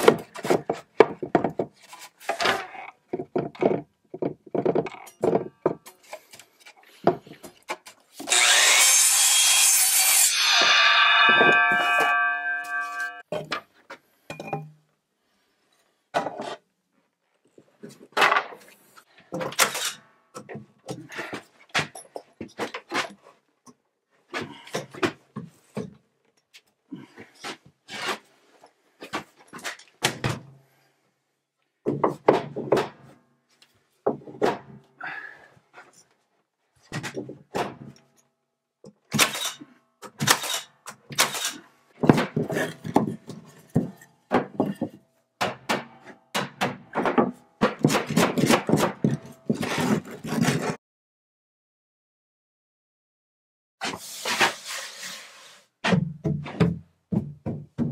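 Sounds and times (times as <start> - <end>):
nail gun driving nails: 39.1 - 43.1
hammer striking nails: 43.7 - 49.7.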